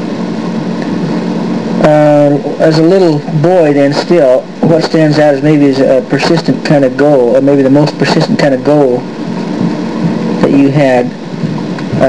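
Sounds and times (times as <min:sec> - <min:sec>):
faint low hum: 0:00.0 - 0:12.0
tape hiss: 0:00.0 - 0:12.0
person saying uh: 0:01.8 - 0:09.0.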